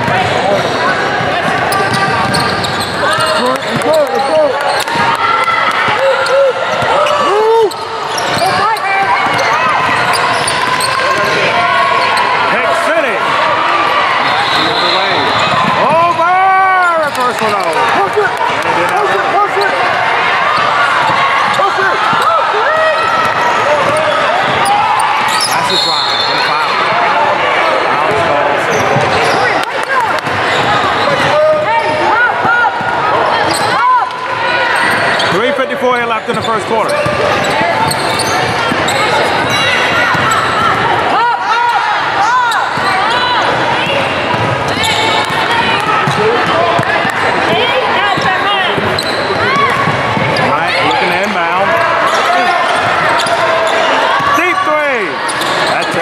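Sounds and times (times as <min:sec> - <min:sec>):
shouts and chatter: 0:00.0 - 0:56.0.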